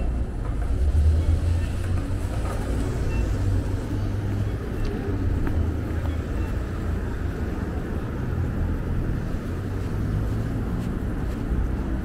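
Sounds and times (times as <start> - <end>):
traffic rumble: 0.0 - 12.0.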